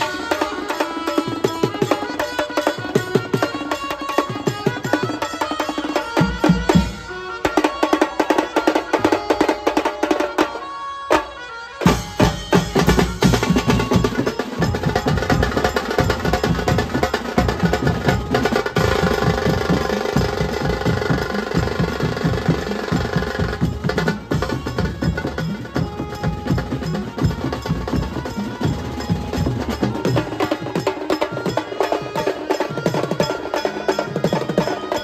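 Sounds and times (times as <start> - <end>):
drum kit toms and cymbals: 0.0 - 8.1, 11.8 - 35.0
band playing fast festive music: 0.0 - 35.0.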